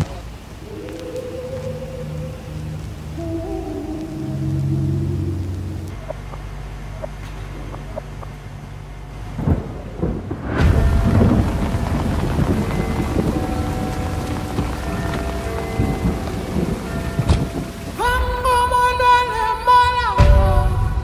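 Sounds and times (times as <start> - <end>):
heavy rain: 0.0 - 21.0
thunder: 9.2 - 18.7, 20.1 - 21.0.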